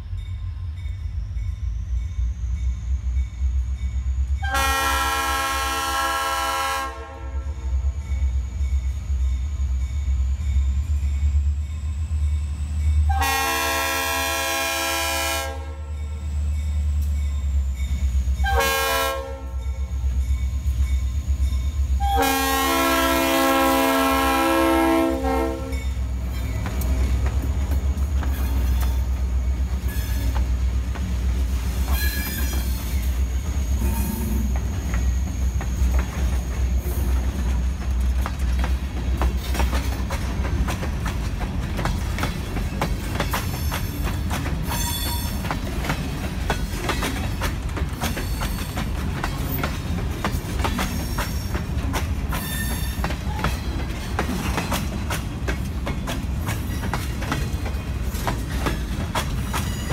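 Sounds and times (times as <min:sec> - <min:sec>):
locomotive air horn: 0:04.4 - 0:07.8, 0:13.1 - 0:16.0, 0:18.4 - 0:19.8, 0:22.0 - 0:26.0
train wheels clicking over rail joints: 0:25.2 - 0:59.9.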